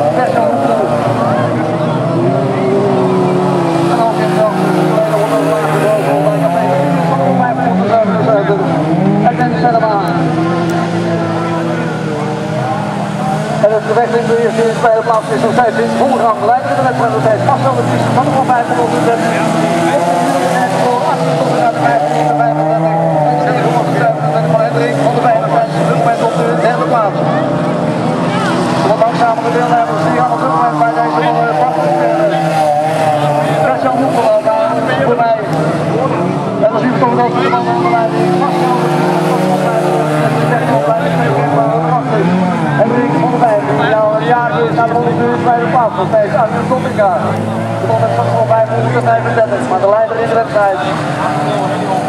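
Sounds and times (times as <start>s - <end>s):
racing car engines revving: 0.0s - 52.0s.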